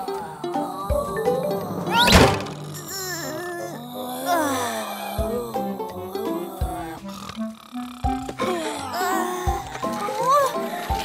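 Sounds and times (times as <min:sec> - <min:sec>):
light background music: 0:00.0 - 0:11.0
rising swish: 0:00.3 - 0:04.1.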